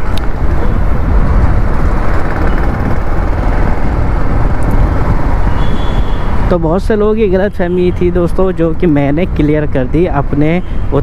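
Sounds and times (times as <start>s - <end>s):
road noise: 0.0s - 11.0s
wind buffeting microphone: 0.0s - 11.0s.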